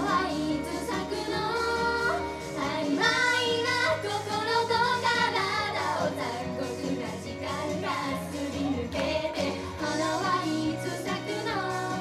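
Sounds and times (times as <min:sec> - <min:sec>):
backing music through speakers: 0:00.0 - 0:12.0
women singing pop song: 0:00.0 - 0:12.0.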